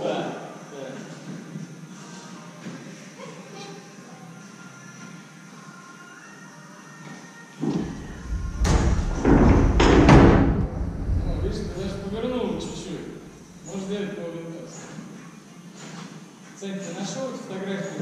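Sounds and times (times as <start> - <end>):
faint music: 0.0 - 18.0
heavy thumps and rumbling: 7.7 - 13.7.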